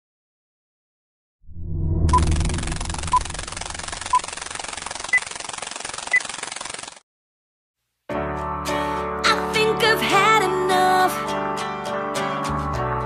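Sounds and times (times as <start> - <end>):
low rumble: 1.4 - 4.3
short electronic beeps: 1.9 - 4.3.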